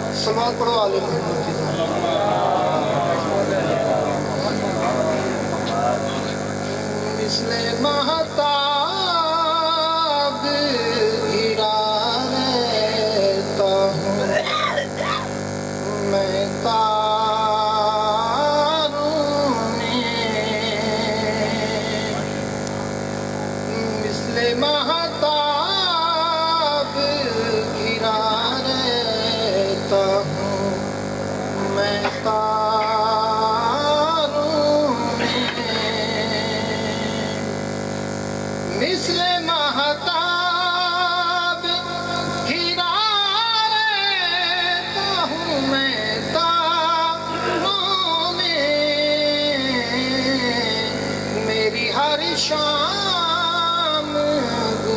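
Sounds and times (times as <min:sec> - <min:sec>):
man chanting devotional verse: 0:00.0 - 0:14.5, 0:15.8 - 0:22.6, 0:23.4 - 0:37.6, 0:38.7 - 0:54.9.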